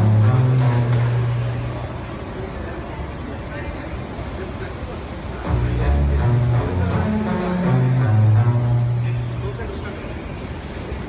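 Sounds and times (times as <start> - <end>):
steady noisy background: 0.0 - 11.0.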